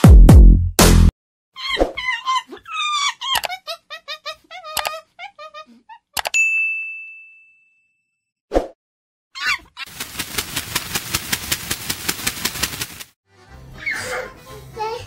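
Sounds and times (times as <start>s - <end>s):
bell-like ding: 6.4s - 8.2s
rapidly pulsing rasp: 9.9s - 13.1s.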